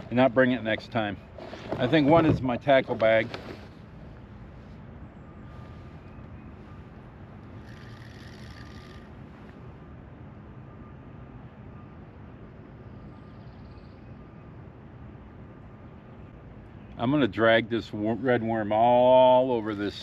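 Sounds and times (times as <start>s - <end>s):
distant road traffic hum: 0.0s - 20.0s.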